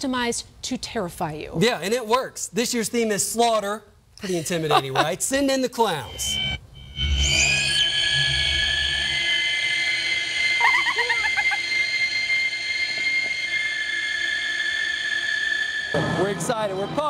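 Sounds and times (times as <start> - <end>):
high eerie drone tones: 5.8 - 17.0
short warbling cry: 6.0 - 15.9.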